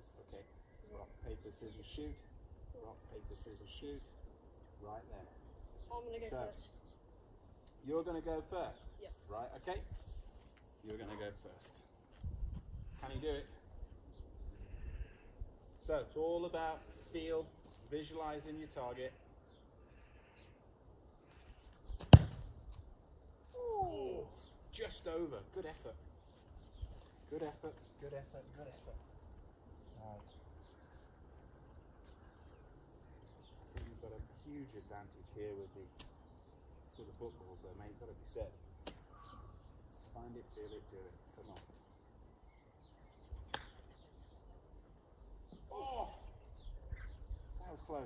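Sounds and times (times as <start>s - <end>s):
birds chirping: 0.0s - 48.0s
boot kicking football thud: 22.0s - 22.6s.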